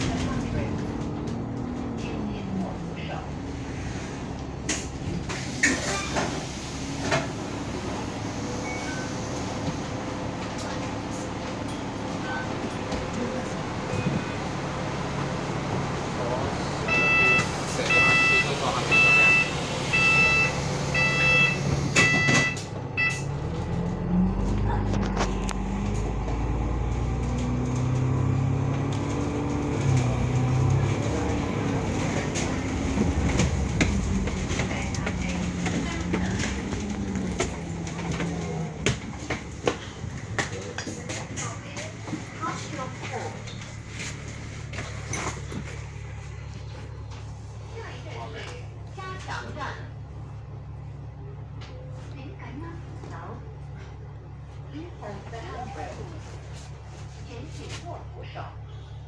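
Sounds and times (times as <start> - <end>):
bus engine accelerating: 0.0 - 59.0
bus doors closing: 3.6 - 46.1
bus door warning beeps: 8.6 - 9.5, 16.9 - 23.4.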